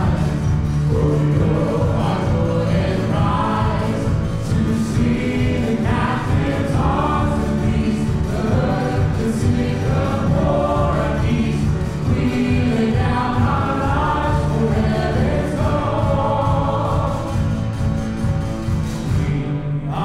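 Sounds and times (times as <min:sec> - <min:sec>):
voices singing: 0:00.0 - 0:20.0
worship band playing: 0:00.0 - 0:20.0.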